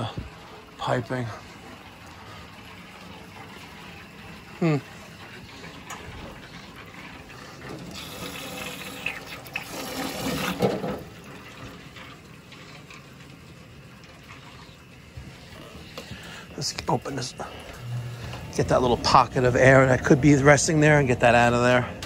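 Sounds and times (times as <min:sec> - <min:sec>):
air purging from pipes: 0:00.0 - 0:22.0
water running into a sink: 0:00.0 - 0:22.0.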